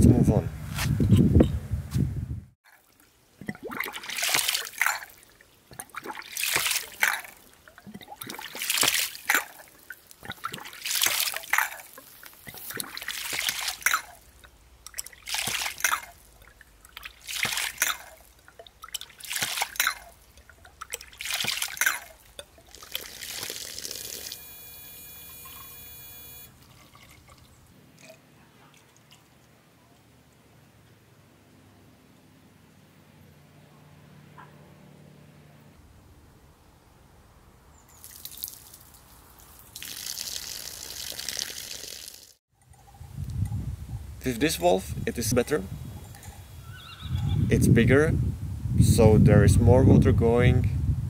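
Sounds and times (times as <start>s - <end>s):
water gushing in pulses: 2.8s - 24.4s.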